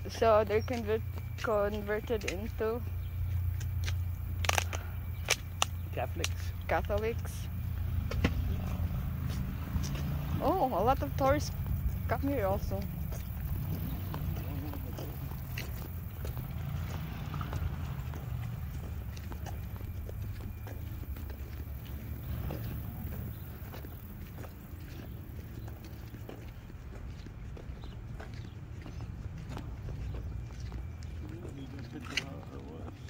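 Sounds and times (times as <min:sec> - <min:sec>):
light footsteps: 0:00.0 - 0:33.0.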